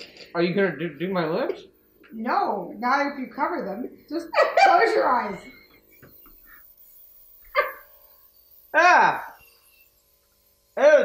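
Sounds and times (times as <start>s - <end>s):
faint steady hum: 0.0s - 11.0s
airbrush spraying: 3.4s - 10.8s
man's high-pitched yelp: 8.8s - 9.3s.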